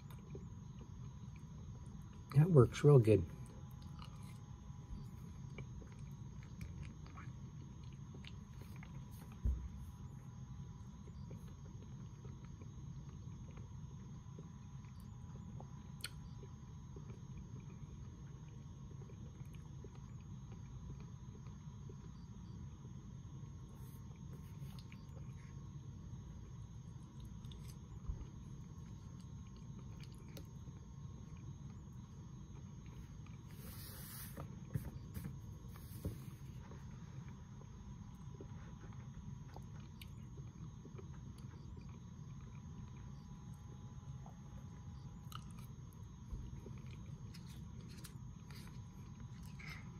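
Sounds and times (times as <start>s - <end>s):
soft chewing: 0.0s - 2.4s, 3.0s - 49.9s
low room hum: 0.0s - 49.9s.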